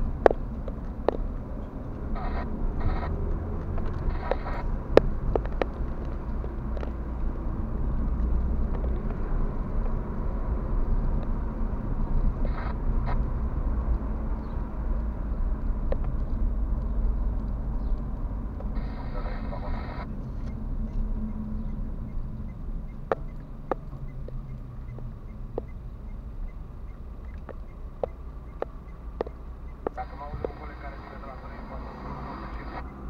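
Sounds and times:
car engine and tyres rumbling: 0.0s - 33.0s.

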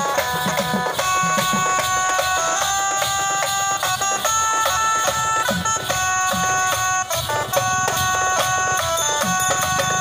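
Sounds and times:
harmonium playing a melody: 0.0s - 10.0s.

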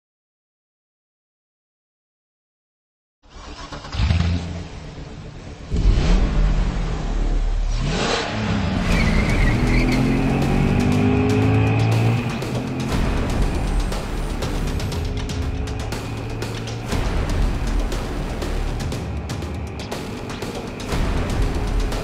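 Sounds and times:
sports car engine revving: 3.8s - 22.0s.

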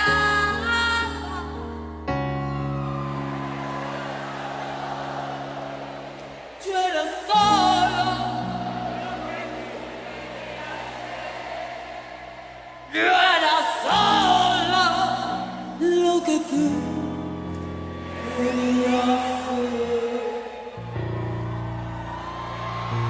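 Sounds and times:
person singing with vibrato: 0.0s - 2.0s, 6.6s - 10.9s, 12.8s - 21.0s.

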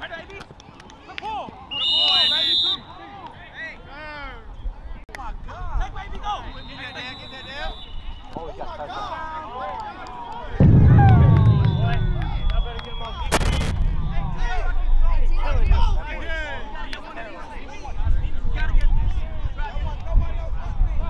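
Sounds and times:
sharp crack: 10.6s - 15.4s
people shouting and cheering: 10.6s - 15.7s
loud low rumble: 10.6s - 16.0s.

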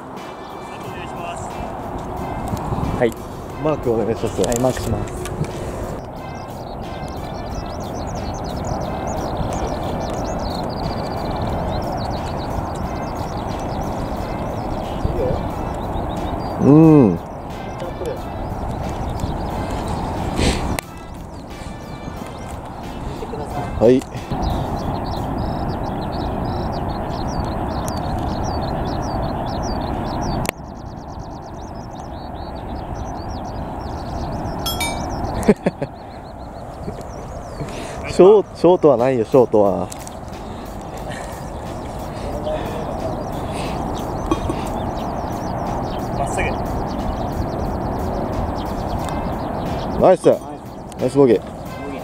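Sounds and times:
small birds chirping: 0.0s - 52.0s
steady background rush: 0.0s - 52.0s.

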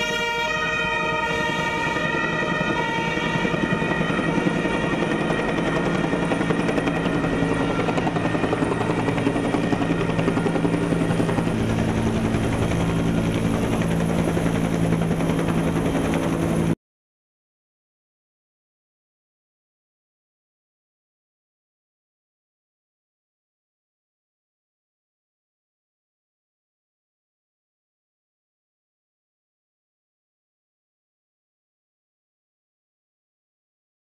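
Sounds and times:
police siren: 0.0s - 16.3s
helicopter rotor chop: 1.7s - 16.8s.

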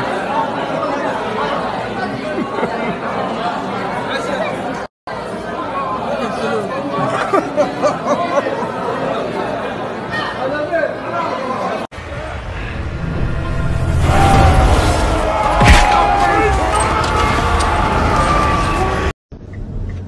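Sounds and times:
crowd chattering: 0.0s - 19.1s.

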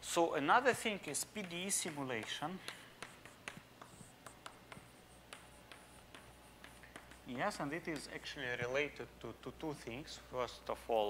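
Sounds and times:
chalk scratching on blackboard: 0.6s - 8.4s
chalk tapping on board: 0.6s - 8.8s.

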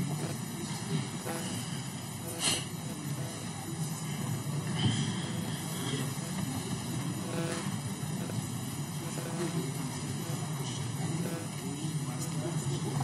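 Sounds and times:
low hum of a large room: 0.0s - 13.0s
murmur of voices: 0.0s - 13.0s.

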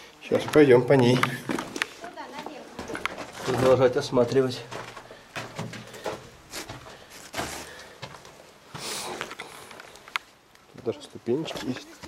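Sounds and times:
footsteps on gravel: 0.3s - 9.5s.

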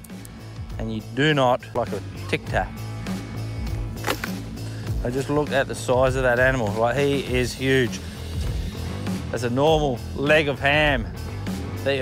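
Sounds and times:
background music with low tone: 0.0s - 12.0s
jaws snapping shut: 3.7s - 4.4s.

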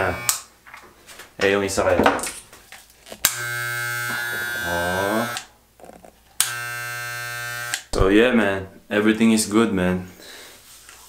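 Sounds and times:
electric hair clippers buzzing: 0.0s - 0.5s, 3.2s - 5.5s, 6.4s - 7.9s.

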